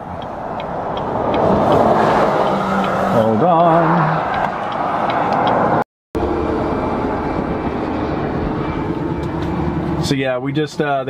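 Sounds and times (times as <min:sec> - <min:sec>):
road and engine noise in truck cab: 0:00.0 - 0:11.0.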